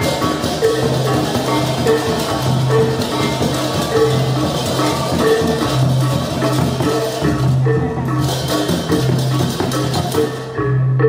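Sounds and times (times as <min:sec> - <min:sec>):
gamelan music with gongs: 0:00.0 - 0:11.0.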